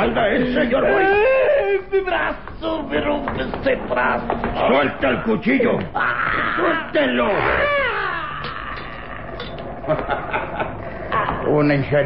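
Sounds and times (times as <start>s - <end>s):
man's pained cry: 5.9s - 9.6s.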